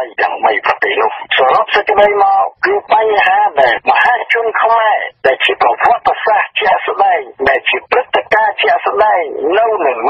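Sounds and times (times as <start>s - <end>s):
person reading aloud: 0.0s - 10.0s.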